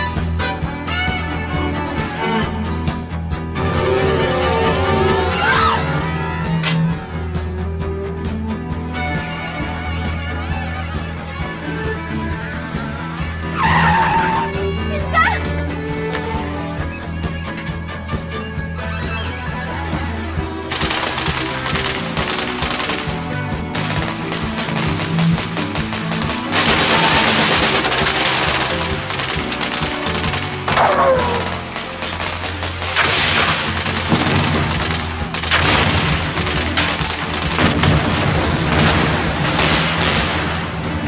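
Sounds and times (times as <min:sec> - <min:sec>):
soundtrack music: 0:00.0 - 0:41.0
tyres screeching: 0:13.4 - 0:15.6
automatic gunfire: 0:20.7 - 0:38.1.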